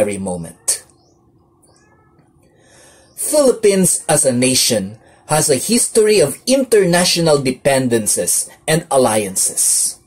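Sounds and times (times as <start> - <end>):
low steady hum: 0.0 - 10.0
faint animal call: 1.6 - 3.2.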